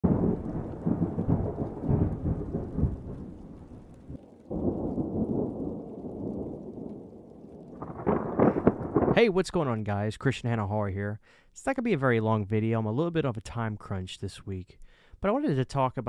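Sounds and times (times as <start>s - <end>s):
thunder rumbling: 0.0s - 10.1s.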